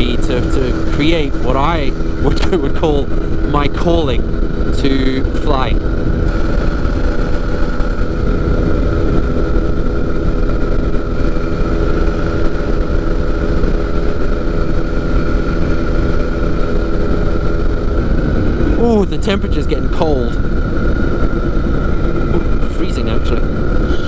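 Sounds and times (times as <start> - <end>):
microlight engine droning: 0.0 - 24.0
wind rushing: 4.2 - 19.5.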